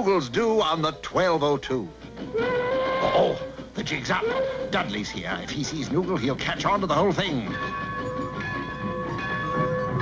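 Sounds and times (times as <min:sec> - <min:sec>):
steam train whistle: 0:02.3 - 0:05.0.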